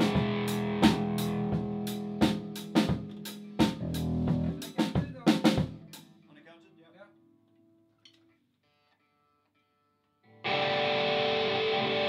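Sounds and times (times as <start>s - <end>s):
electric guitar ringing: 0.0s - 4.2s, 10.4s - 12.0s.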